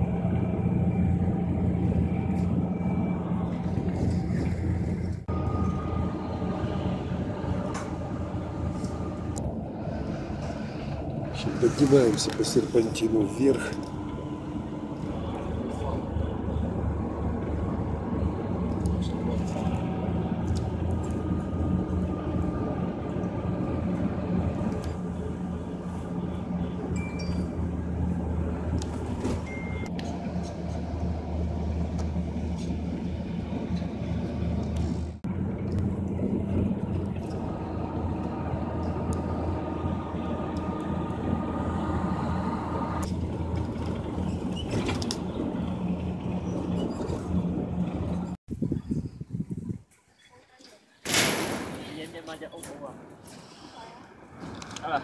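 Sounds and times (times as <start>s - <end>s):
vehicle engine and road noise: 0.0s - 49.0s, 51.1s - 55.0s.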